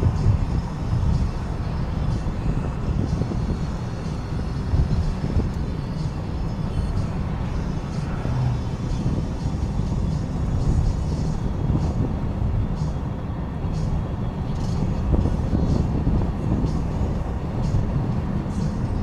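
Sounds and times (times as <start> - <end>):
car tyres and engine rumble: 0.0 - 19.0.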